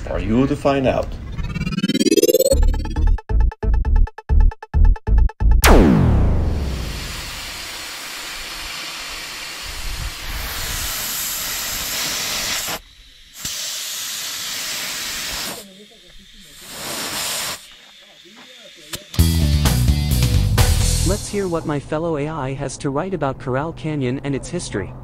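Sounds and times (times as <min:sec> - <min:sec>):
air hissing out of a tyre: 0:06.6 - 0:19.4.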